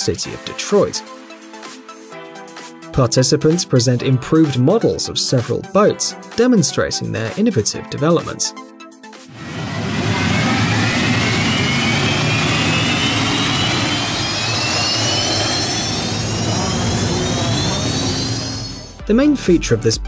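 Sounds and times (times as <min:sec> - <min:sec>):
racing boat turbine engine: 0:09.3 - 0:19.0.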